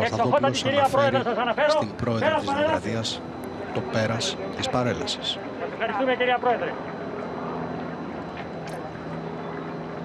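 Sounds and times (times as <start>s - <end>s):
man giving a formal report: 0.0s - 3.2s.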